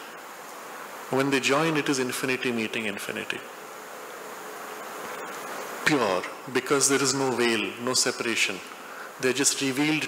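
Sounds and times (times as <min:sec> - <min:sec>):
room noise hiss: 0:00.0 - 0:10.0
man speaking: 0:01.1 - 0:03.5, 0:05.8 - 0:10.0.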